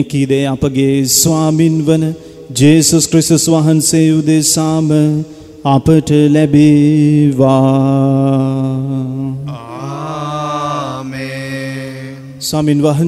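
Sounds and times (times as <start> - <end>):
sung liturgical chant: 0.8 - 13.0.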